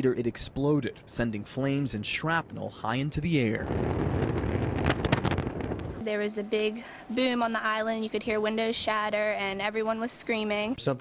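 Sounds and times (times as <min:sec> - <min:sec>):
sharp crackles and pops: 0:00.9 - 0:06.2
deep explosion rumble: 0:00.9 - 0:06.4.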